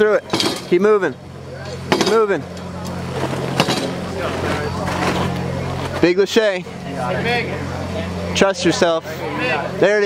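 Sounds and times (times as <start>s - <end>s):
faint voices: 0.0s - 10.0s
low mechanical hum: 0.0s - 10.0s.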